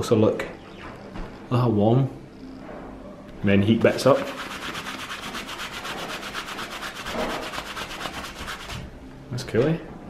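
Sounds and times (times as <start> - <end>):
hand rubbing on fabric: 3.8 - 8.8.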